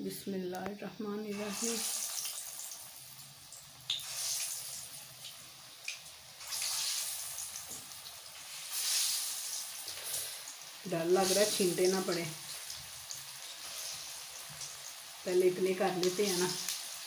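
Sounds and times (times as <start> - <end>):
balls deep-frying in hot oil: 0.0 - 17.0.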